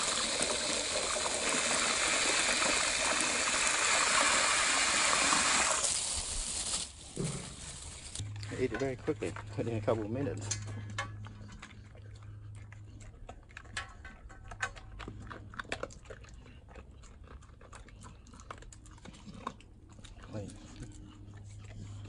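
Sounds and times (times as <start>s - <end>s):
steady low hum: 7.0s - 16.4s
dog chewing and licking: 8.2s - 22.0s.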